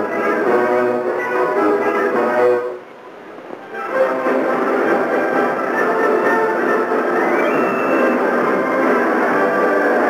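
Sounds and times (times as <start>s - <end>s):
orchestral film music: 0.0s - 2.8s, 3.6s - 10.0s
held brass chord: 0.0s - 2.9s, 3.8s - 7.1s.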